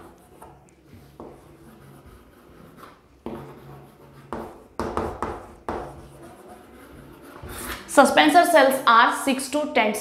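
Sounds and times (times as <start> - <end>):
chalk scratching on blackboard: 0.0 - 8.0.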